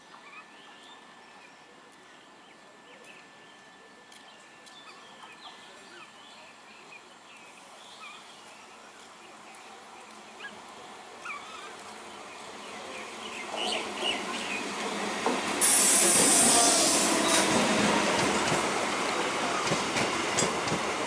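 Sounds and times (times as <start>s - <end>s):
electric train running: 11.9s - 21.0s
loud high hiss: 15.5s - 20.4s.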